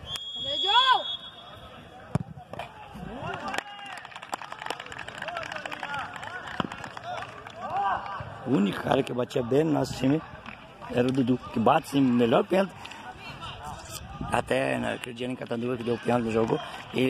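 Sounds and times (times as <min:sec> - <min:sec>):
referee's whistle blast: 0:00.0 - 0:01.8
spectators shouting and talking: 0:04.6 - 0:17.0.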